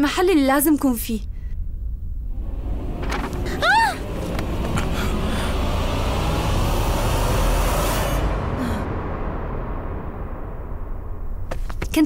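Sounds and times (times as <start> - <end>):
hiss over deep rumble: 2.2 - 11.8.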